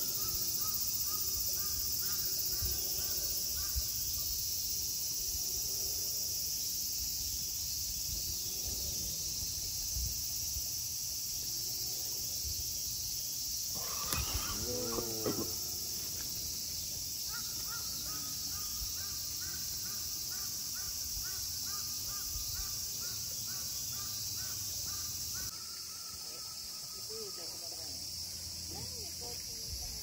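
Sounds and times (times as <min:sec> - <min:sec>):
brief wavering cry: 0:13.8 - 0:15.8
bird repeating rising call: 0:13.8 - 0:16.0.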